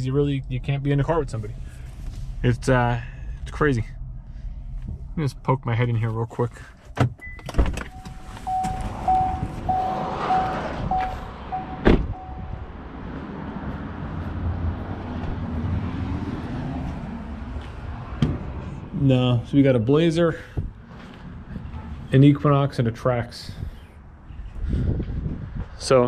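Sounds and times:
car door shutting: 0:06.9 - 0:12.6
car door warning chime: 0:07.2 - 0:12.7
low wind noise: 0:07.2 - 0:26.0.

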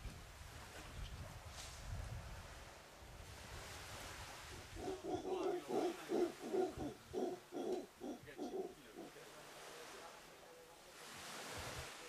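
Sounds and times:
howler monkey pulsed grunts: 0:04.8 - 0:09.1.

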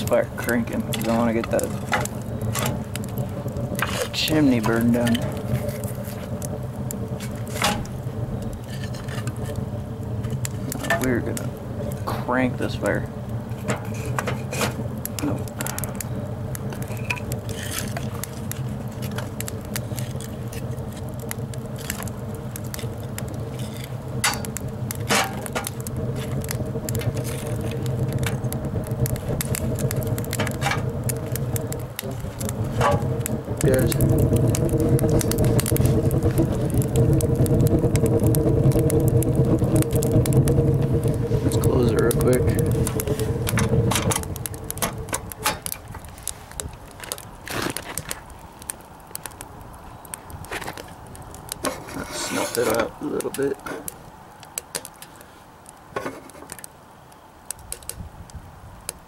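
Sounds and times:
steady low hum: 0:00.0 - 0:47.5
fire crackling: 0:00.0 - 0:59.0
logs knocking against firebox: 0:21.2 - 0:46.1.

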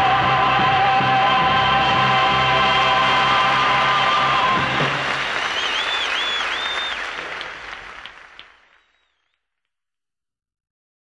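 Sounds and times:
crowd whistling: 0:01.4 - 0:09.4
audience applauding: 0:02.2 - 0:09.3.

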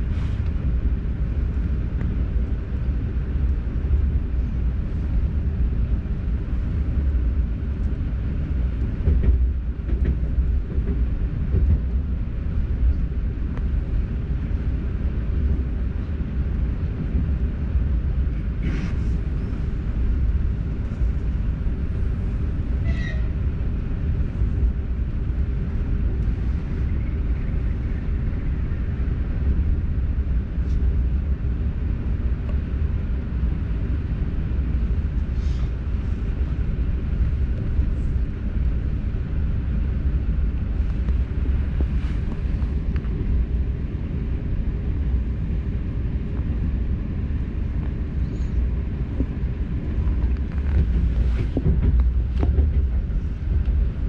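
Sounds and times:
electric train rumble: 0:00.0 - 0:54.0.

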